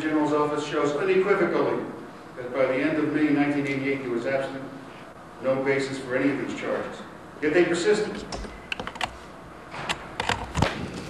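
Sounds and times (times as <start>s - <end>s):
sharp irregular clicks: 8.2s - 9.2s.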